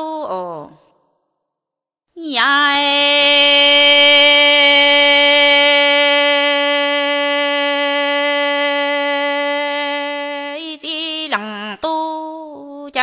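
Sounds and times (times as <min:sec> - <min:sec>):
woman singing a long note: 0:02.3 - 0:13.0.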